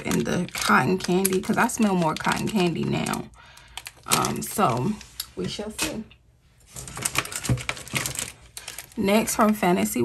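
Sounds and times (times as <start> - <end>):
nails clicking on plastic packaging: 0.0 - 6.0, 6.8 - 9.6.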